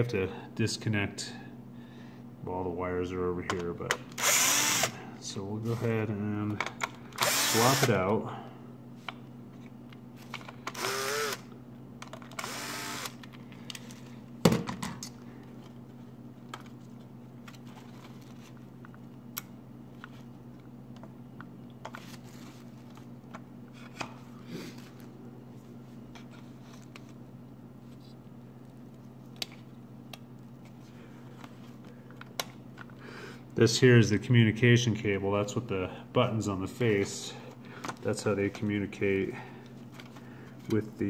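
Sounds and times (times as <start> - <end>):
low steady hum: 0.0 - 41.0
electric screwdriver running: 4.2 - 5.0, 7.2 - 7.9, 10.7 - 11.5, 12.3 - 13.2.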